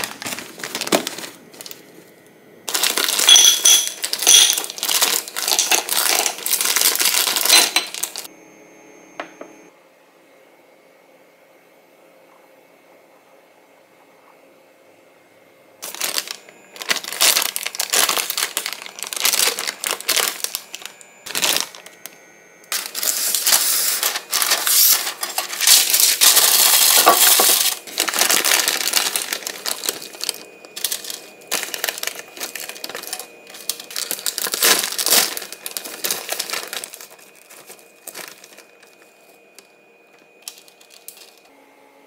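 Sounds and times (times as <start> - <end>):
plastic bags crinkling: 0.0 - 2.0, 2.7 - 8.3, 15.8 - 41.5
parchment paper rustling: 0.0 - 2.1, 2.7 - 8.3, 15.8 - 22.0, 22.7 - 39.7, 40.4 - 41.4.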